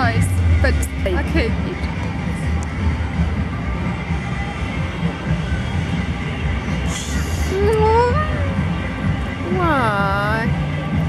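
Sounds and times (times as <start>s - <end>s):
woman's voice: 0.0s - 2.0s, 7.5s - 8.6s, 9.4s - 10.5s
faint music: 0.0s - 11.0s
low rumble: 0.0s - 11.0s.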